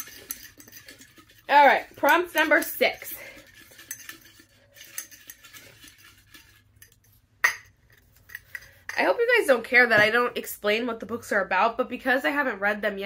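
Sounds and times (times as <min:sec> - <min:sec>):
paper clinking against glass jar: 0:00.0 - 0:06.9.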